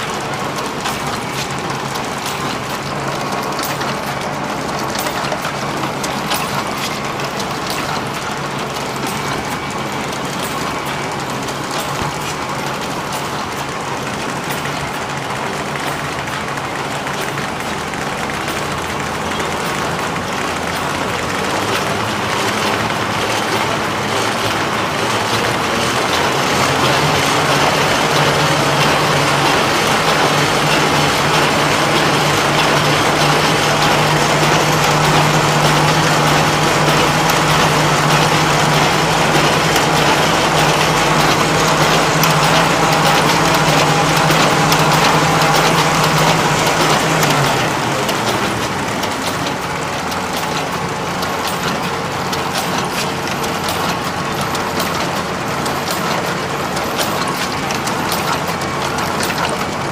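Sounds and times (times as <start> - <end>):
industrial machine clattering: 0.0 - 59.9.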